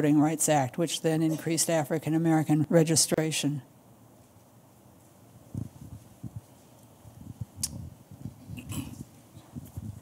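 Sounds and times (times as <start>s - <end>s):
microphone handling thumps: 7.2s - 10.0s
sharp click: 7.6s - 7.8s.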